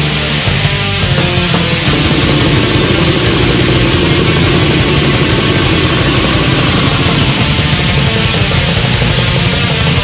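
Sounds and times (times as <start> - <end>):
distorted electric guitars: 0.0 - 10.0
very fast drumming: 0.5 - 10.0.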